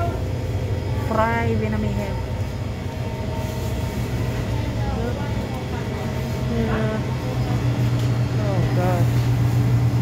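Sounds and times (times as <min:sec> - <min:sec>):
shop hum and rumble: 0:00.0 - 0:10.0.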